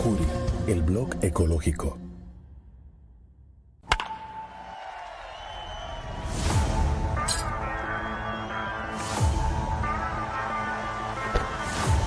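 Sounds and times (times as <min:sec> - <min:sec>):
commercial music: 0:03.8 - 0:12.0.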